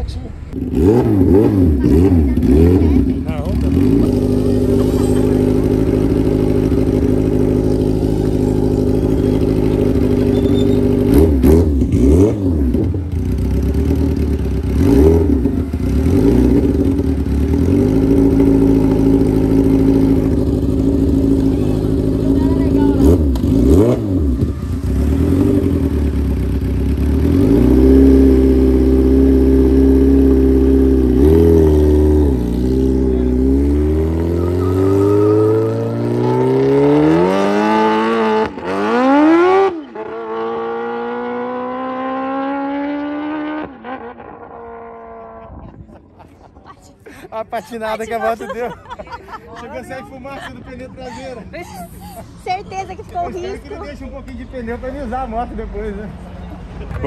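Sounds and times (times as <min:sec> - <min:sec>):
motorcycle engine revving: 0:00.4 - 0:45.8.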